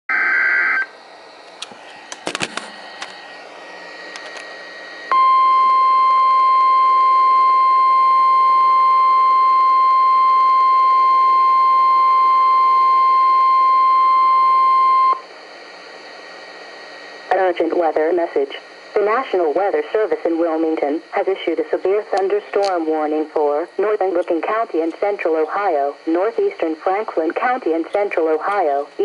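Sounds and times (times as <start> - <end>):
steady alarm tone: 2.8 - 21.6.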